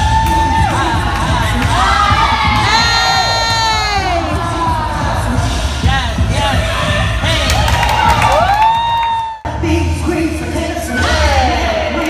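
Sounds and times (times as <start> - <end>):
dance music with low beat: 0.0 - 12.0.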